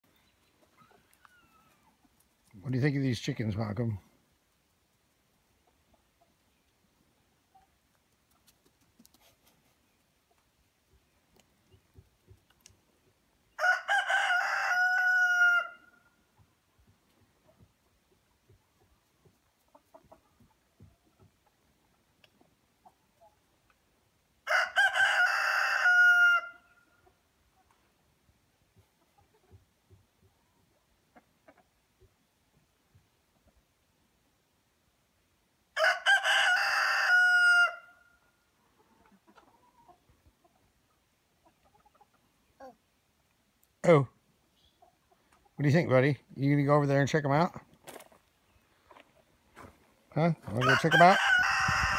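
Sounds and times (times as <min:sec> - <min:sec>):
rooster crowing: 0:13.6 - 0:16.0, 0:24.4 - 0:26.7, 0:35.8 - 0:38.0, 0:50.6 - 0:51.9.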